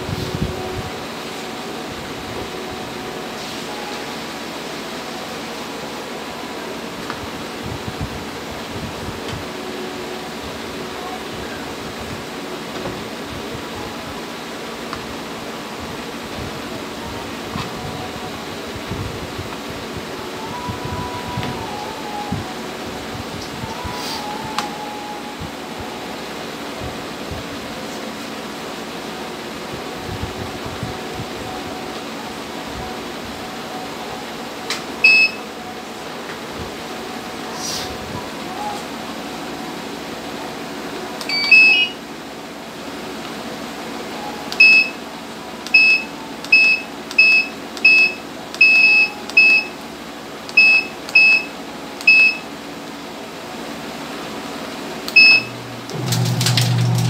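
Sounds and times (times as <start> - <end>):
short electronic beep: 35.0 - 35.4, 41.3 - 42.0, 44.6 - 45.0, 55.2 - 55.6
washing machine buzzer beeping: 35.0 - 35.5, 41.2 - 42.0, 44.6 - 45.0, 45.7 - 49.8, 50.5 - 52.5, 55.1 - 57.0.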